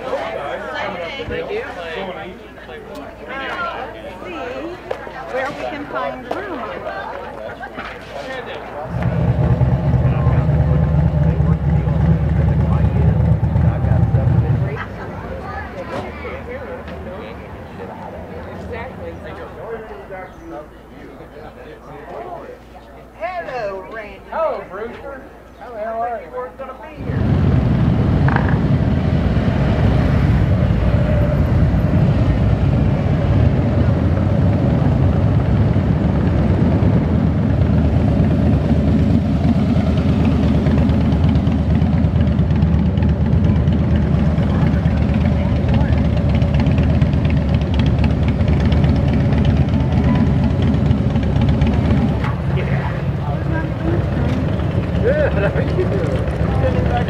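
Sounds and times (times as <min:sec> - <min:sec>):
motorcycle engines rumbling: 0:00.0 - 0:57.0.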